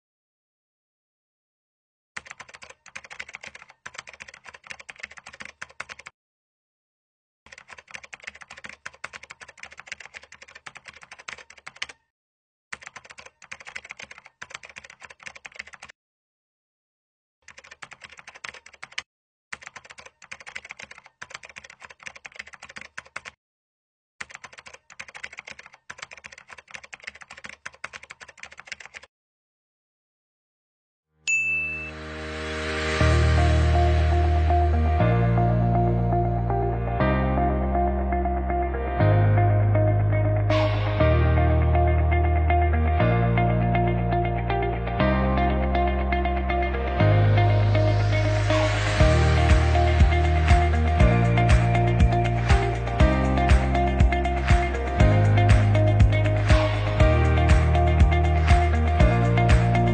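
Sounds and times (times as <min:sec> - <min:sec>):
rapid keyboard typing: 0:02.2 - 0:06.1, 0:07.5 - 0:12.0, 0:12.7 - 0:15.9, 0:17.4 - 0:23.4, 0:24.2 - 0:29.1, 0:49.0 - 0:59.9
bright ding: 0:31.3 - 0:32.2
music: 0:31.5 - 0:59.9.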